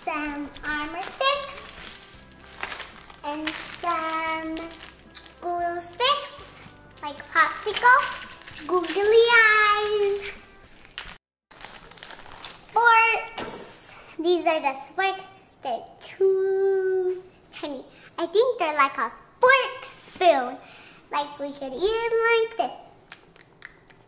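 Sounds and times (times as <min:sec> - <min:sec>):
girl singing and chattering: 0:00.0 - 0:02.1, 0:03.1 - 0:10.6.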